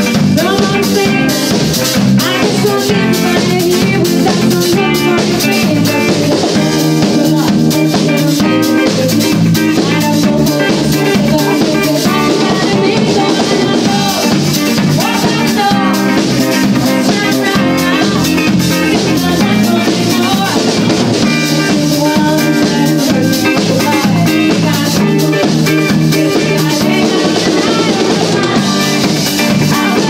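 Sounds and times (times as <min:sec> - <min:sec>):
drum kit dance beat: 0:00.0 - 0:30.0
electric bass: 0:00.0 - 0:30.0
electric guitar: 0:00.0 - 0:30.0.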